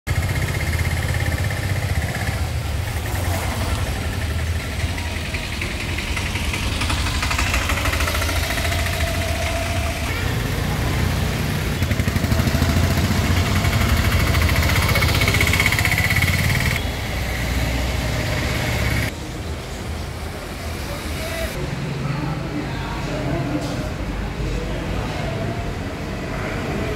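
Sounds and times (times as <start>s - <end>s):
vehicle engine running: 0.1s - 19.2s.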